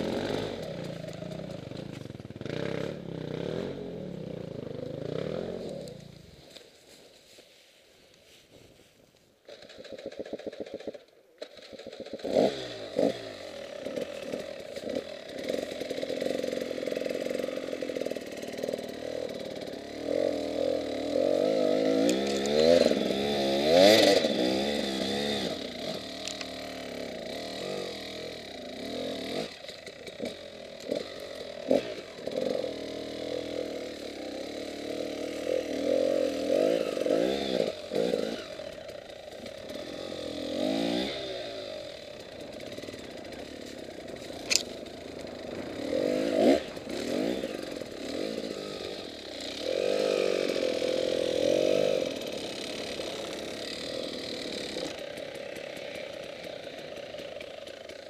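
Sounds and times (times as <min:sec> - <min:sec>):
motorcycle engine revving: 0:00.0 - 0:06.7, 0:09.4 - 0:58.0.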